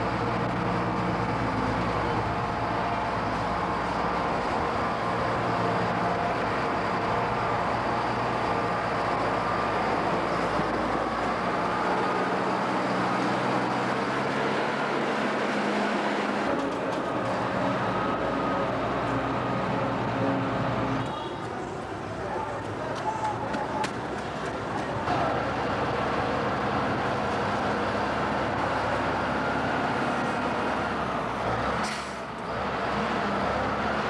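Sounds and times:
diesel engine running: 0.0 - 34.0.

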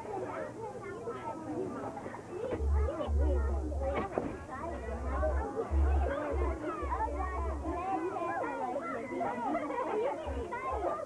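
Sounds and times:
children chattering: 0.0 - 11.0
deep rumble on microphone: 2.6 - 7.8.

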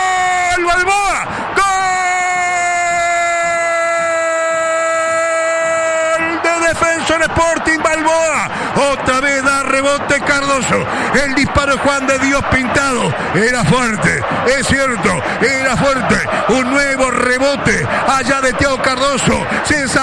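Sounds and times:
commentator shouting goal cry: 0.0 - 20.0
rapid excited commentary: 0.0 - 20.0.

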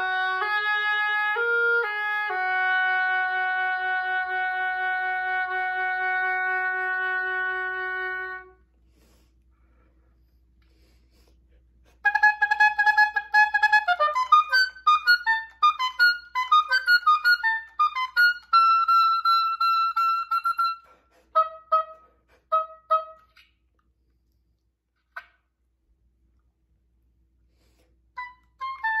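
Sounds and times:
solo oboe playing: 0.0 - 8.7, 12.0 - 23.4, 28.1 - 29.0.

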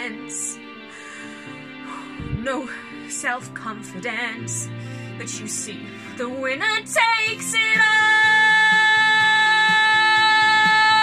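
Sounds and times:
soft accompaniment: 0.0 - 11.0.

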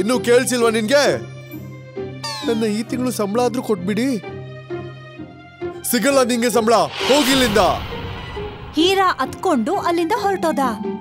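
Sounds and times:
background music: 0.0 - 11.0
cartoon dialogue: 2.2 - 3.0.

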